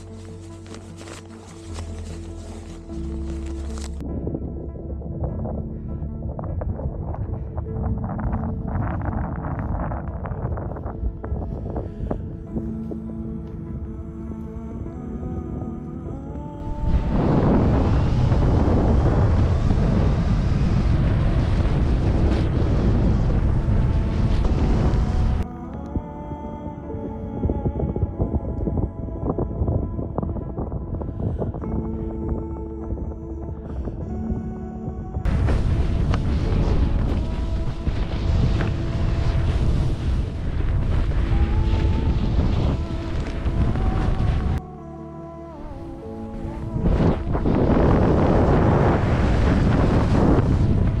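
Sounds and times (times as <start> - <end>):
skis running over snow: 0.0 - 4.0, 35.3 - 44.6
wind buffeting microphone: 3.7 - 13.8, 16.4 - 44.6, 45.8 - 51.0.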